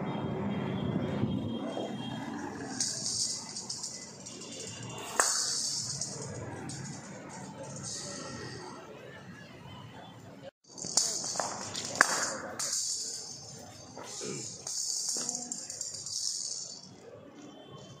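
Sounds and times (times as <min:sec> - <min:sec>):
voices: 0:01.5 - 0:18.0
metallic rattling ball rolling: 0:02.3 - 0:08.9, 0:10.6 - 0:17.1.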